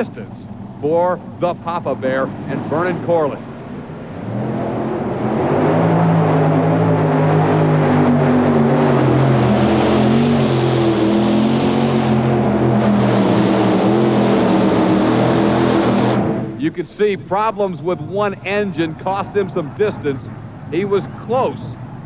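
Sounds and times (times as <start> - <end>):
pulling tractor engines at high revs: 0.0 - 22.0.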